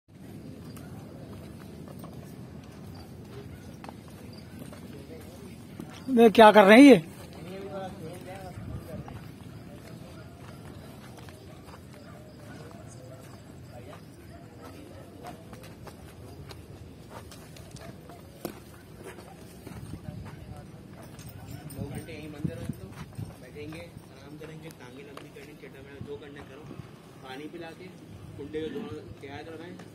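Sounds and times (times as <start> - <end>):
hooves pawing in sand: 0.2 - 28.3
people talking: 17.6 - 29.9.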